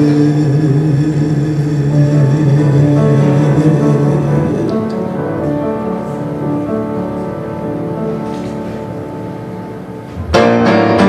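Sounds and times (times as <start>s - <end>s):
man singing long note: 0.0s - 5.4s
grand piano chords: 0.0s - 11.0s.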